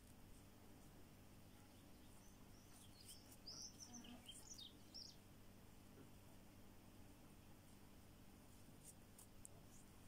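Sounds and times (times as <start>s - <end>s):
faint low hum: 0.0s - 10.0s
bird chirping: 1.4s - 5.3s.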